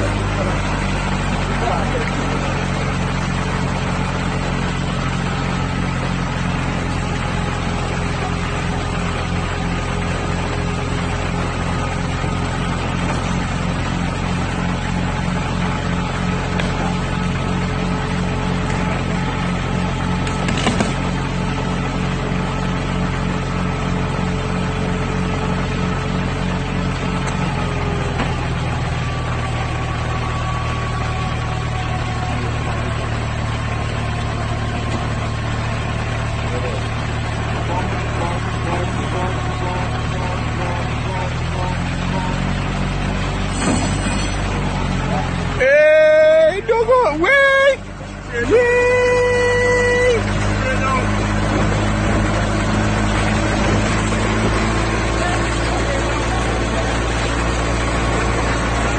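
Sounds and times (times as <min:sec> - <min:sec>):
tow truck engine running: 0:00.0 - 0:58.9.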